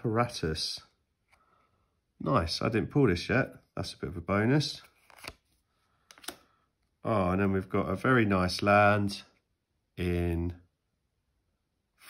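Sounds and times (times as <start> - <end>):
trading cards rustling: 4.7 - 6.6.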